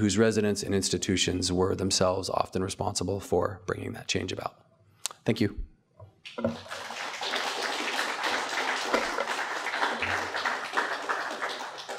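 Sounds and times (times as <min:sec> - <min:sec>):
audience applauding: 0:06.4 - 0:11.9.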